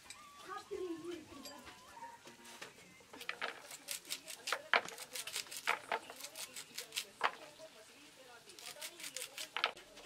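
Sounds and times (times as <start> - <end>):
sickle slicing leafy greens: 3.3 - 7.5, 8.5 - 9.6.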